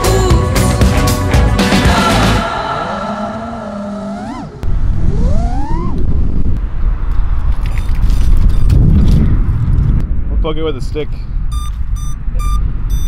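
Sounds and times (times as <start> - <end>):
drone motors whining: 2.5 - 6.6
wind and prop wash rumble: 4.6 - 13.0.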